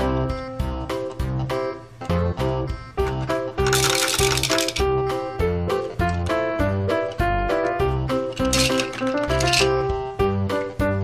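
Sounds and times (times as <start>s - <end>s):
background music with steady beat: 0.0s - 11.0s
plastic balls rattling down chute: 3.6s - 4.9s, 8.2s - 9.8s.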